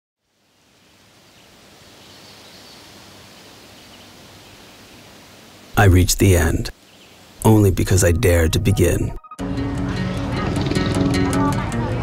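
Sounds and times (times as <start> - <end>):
faint outdoor hiss: 0.2 - 9.2.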